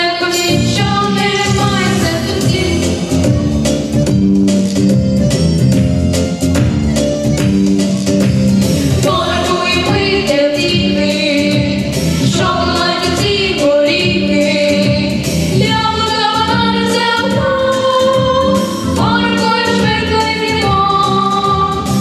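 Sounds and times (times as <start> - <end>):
instrumental accompaniment with beat: 0.0 - 22.0
girls singing: 8.9 - 21.9.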